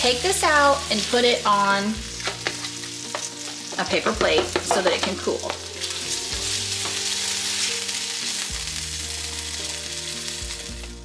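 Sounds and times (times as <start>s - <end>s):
sausage sizzling in frying pan: 0.0s - 11.0s
soft music of held low notes: 0.0s - 11.0s.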